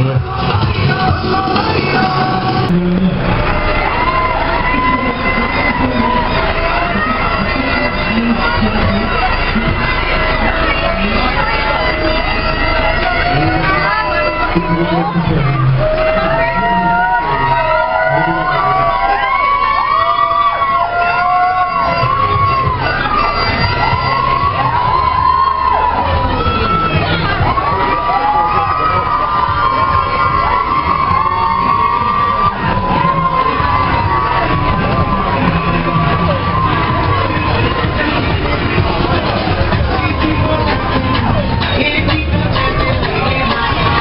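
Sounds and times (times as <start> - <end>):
children shouting and cheering: 0.0 - 44.0.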